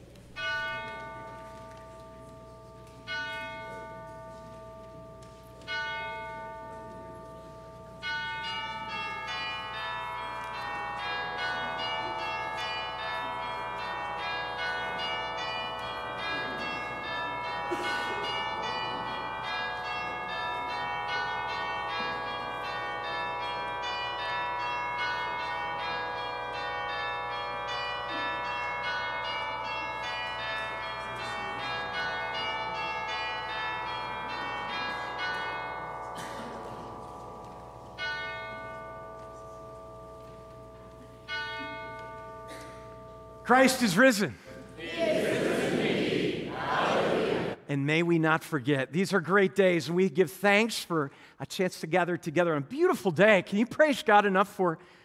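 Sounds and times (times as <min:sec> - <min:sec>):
church bells ringing: 0:00.0 - 0:44.8.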